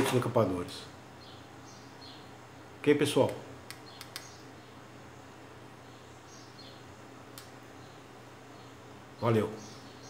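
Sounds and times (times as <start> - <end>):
room hum: 0.0 - 10.0
wire stripper clicks: 3.2 - 4.4.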